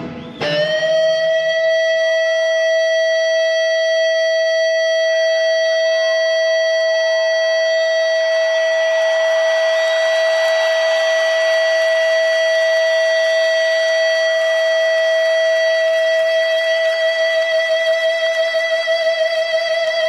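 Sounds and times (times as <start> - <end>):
soft band backing: 0.0 - 2.6
electric guitar feedback note: 0.0 - 20.0.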